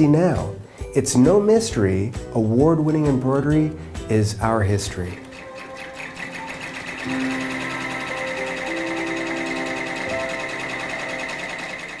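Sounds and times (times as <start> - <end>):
embroidery machine stitching: 4.9 - 12.0.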